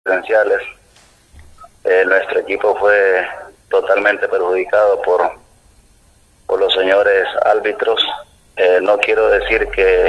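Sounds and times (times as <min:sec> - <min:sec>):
faint line noise: 0:01.4 - 0:10.0
man speaking over phone line: 0:01.8 - 0:05.4, 0:06.5 - 0:10.0.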